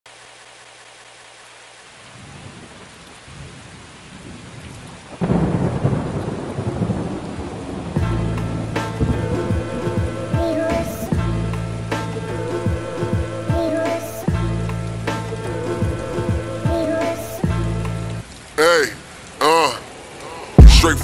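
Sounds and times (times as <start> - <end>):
steady rain: 0.1 - 21.0
thunder rumbling: 2.2 - 13.3
loud thunderclap: 5.2 - 11.1
hip-hop beat with bass: 20.6 - 21.0.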